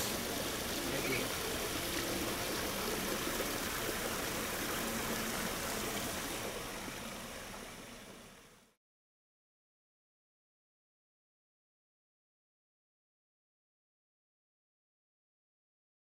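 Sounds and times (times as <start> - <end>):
water rushing from waterfall: 0.0 - 8.7.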